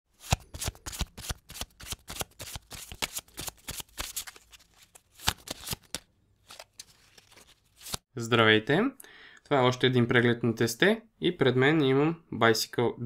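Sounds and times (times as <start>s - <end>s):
playing cards shuffling: 0.2s - 8.0s.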